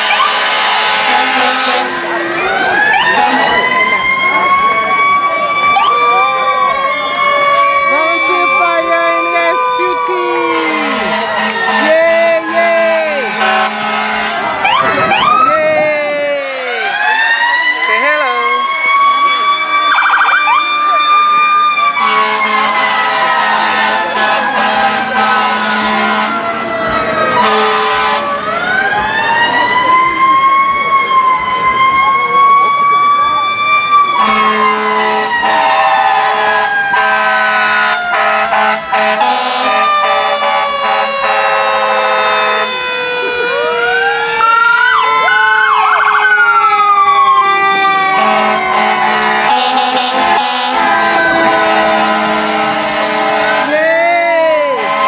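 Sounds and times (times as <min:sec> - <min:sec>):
low horn blasts: 0:00.0 - 0:03.8, 0:07.9 - 0:15.2, 0:22.0 - 0:26.6, 0:27.3 - 0:28.4, 0:34.2 - 0:42.8, 0:48.1 - 0:53.7
mechanical siren wailing: 0:00.0 - 0:12.5, 0:13.2 - 0:15.9, 0:16.8 - 0:53.7.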